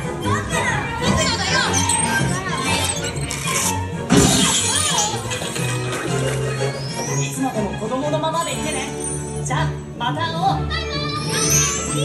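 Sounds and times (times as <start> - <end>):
children calling and shouting: 0.0 - 7.5, 10.5 - 12.0
music playing: 0.0 - 12.0.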